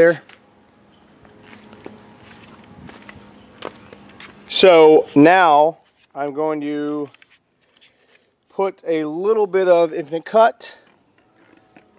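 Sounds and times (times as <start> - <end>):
footsteps on brick pavers: 0.1 - 5.3.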